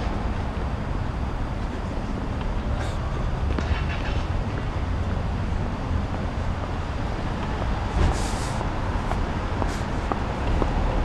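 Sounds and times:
low rumble of distant traffic: 0:00.0 - 0:11.0
brief hiss: 0:08.0 - 0:08.6.

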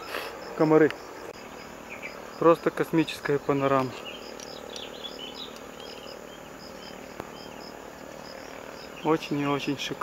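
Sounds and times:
insect pulsing calls: 0:00.0 - 0:10.0
soft bird chirps: 0:01.3 - 0:02.2, 0:03.4 - 0:07.7.

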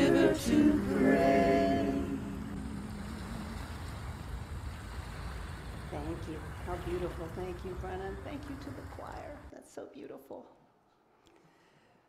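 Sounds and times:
choir singing held note: 0:00.0 - 0:03.7
low rumble and hiss: 0:00.0 - 0:09.9.

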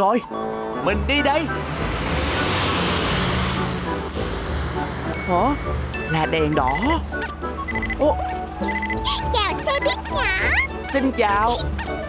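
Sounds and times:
bus engine and road whoosh: 0:00.6 - 0:07.7
low engine hum: 0:00.6 - 0:08.6.

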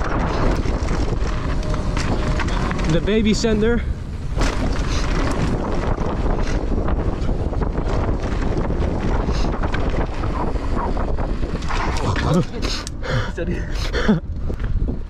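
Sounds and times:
bike tyre and chassis rattle: 0:00.0 - 0:13.0, 0:14.2 - 0:15.0
wind buffeting microphone: 0:00.0 - 0:15.0.

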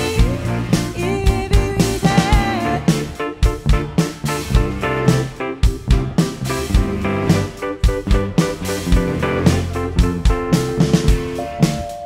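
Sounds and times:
drum kit steady beat: 0:00.0 - 0:12.0
electric bass: 0:00.0 - 0:12.0.

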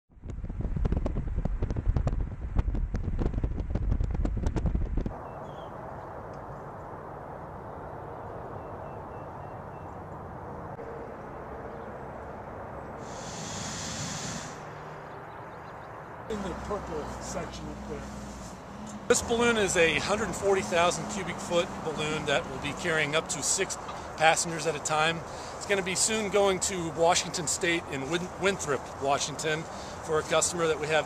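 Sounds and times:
wind buffeting microphone: 0:00.1 - 0:06.3
outdoor background hiss: 0:12.8 - 0:15.0, 0:15.6 - 0:31.0
brief high hiss: 0:13.0 - 0:14.7.

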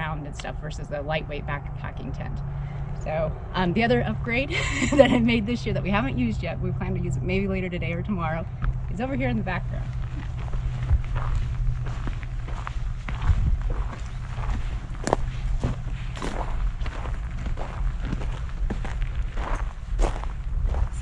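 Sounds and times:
low rumble: 0:00.0 - 0:21.0
footsteps on gravel: 0:08.6 - 0:21.0.

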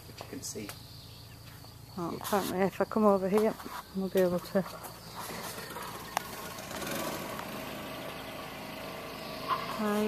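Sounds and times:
motor engine running: 0:04.7 - 0:10.0.

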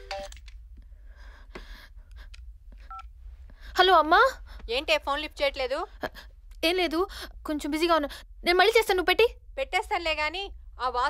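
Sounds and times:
phone keypad tones: 0:02.8 - 0:03.1.

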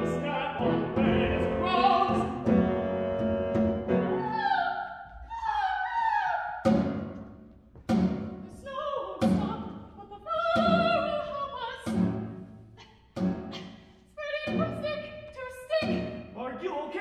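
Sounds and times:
opera voice singing: 0:00.0 - 0:02.5, 0:08.5 - 0:11.9
chamber ensemble with piano: 0:00.0 - 0:16.4.

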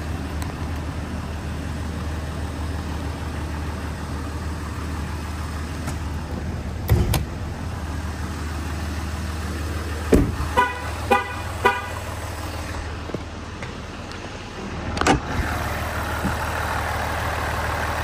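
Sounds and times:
thump: 0:10.1 - 0:10.4.

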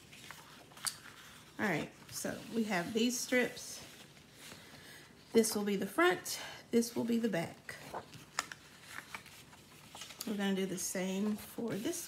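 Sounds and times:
paper rustling: 0:00.0 - 0:05.3, 0:06.8 - 0:12.0.

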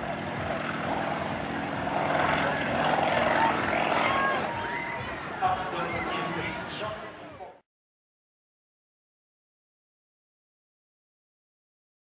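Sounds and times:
propeller plane engine: 0:00.0 - 0:06.4.

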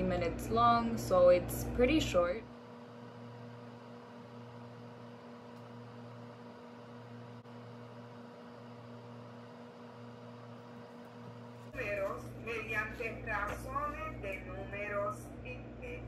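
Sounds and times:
low electrical hum: 0:00.0 - 0:16.0.

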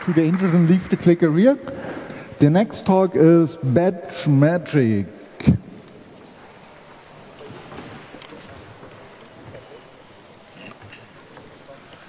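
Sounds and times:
hall room noise: 0:00.0 - 0:12.0.

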